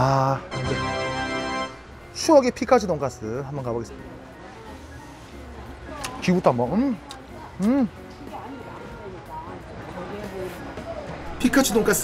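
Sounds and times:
faint murmur of voices: 2.1s - 12.0s.

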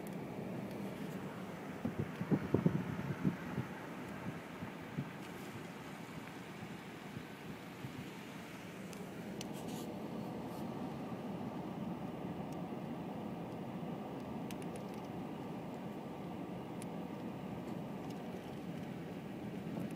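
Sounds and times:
vehicle rumbling on dirt road: 0.0s - 19.9s.

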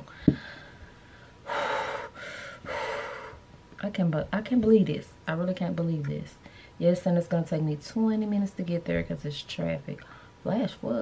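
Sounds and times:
woman gasping: 0.1s - 3.4s.

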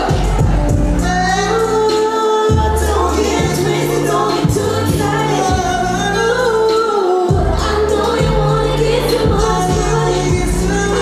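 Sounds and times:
deep bass notes: 0.0s - 1.9s, 2.5s - 6.7s, 7.3s - 11.0s
woman singing: 2.5s - 11.0s.

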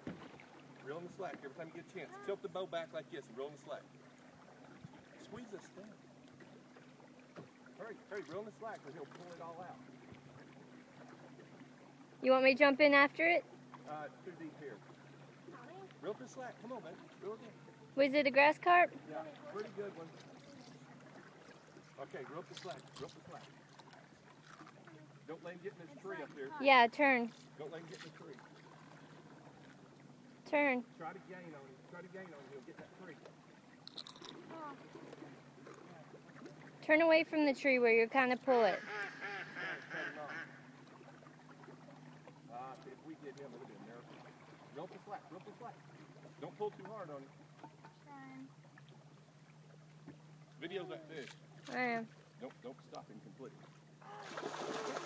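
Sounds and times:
boat motor humming: 0.0s - 55.0s
person speaking: 25.9s - 27.3s
person exclaiming: 54.0s - 54.4s.

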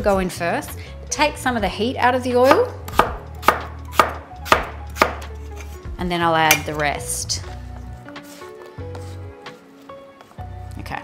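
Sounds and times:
knife chopping on wooden board: 2.5s - 5.8s.

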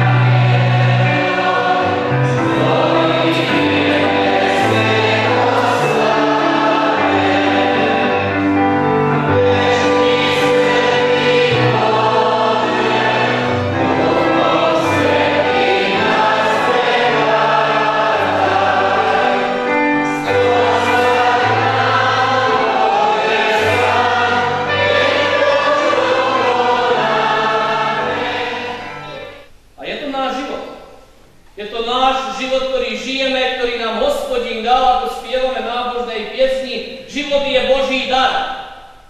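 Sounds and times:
congregation singing a hymn: 0.0s - 29.6s.

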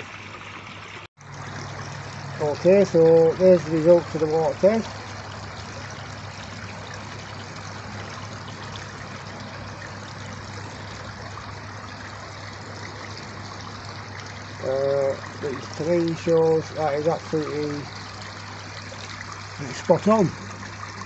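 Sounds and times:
pond water trickling: 0.0s - 21.0s.

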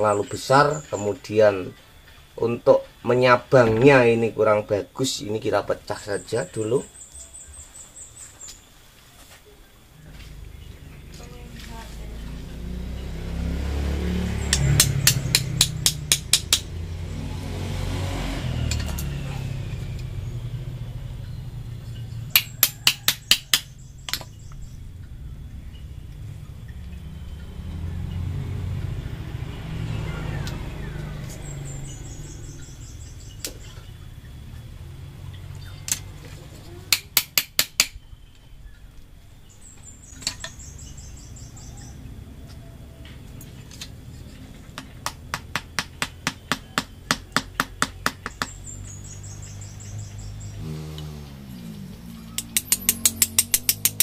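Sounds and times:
faint high chirping: 0.0s - 13.4s, 18.7s - 36.9s
low rumble: 9.9s - 14.6s, 23.7s - 36.8s
metal tool tapping into root: 14.5s - 16.8s, 22.3s - 24.3s, 36.9s - 38.0s, 52.4s - 54.0s.

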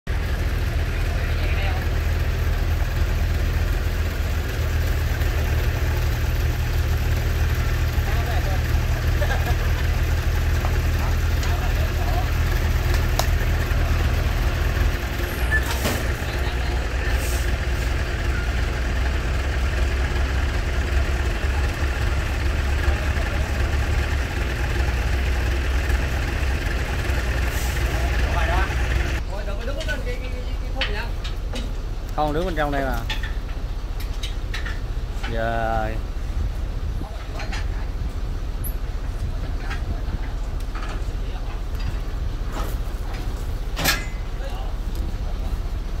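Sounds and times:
truck diesel engine rumbling: 0.0s - 46.0s.

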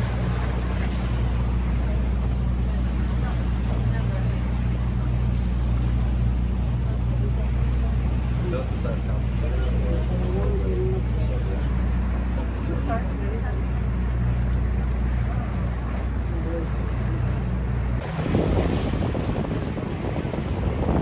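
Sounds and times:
motorboat engine humming: 0.0s - 21.0s
water rushing along hull: 0.0s - 21.0s.

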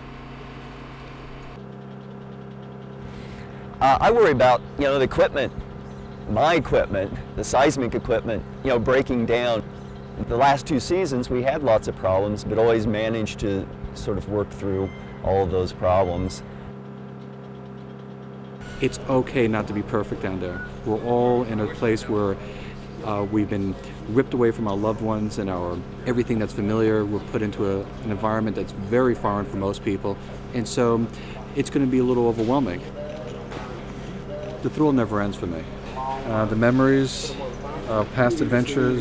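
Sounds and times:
plane engines droning in cabin: 0.0s - 28.9s
man speaking: 18.8s - 22.4s, 34.3s - 39.0s.

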